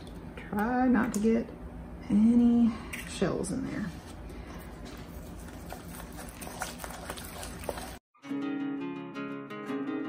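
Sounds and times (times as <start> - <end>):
spoon working dough: 3.7 - 8.0.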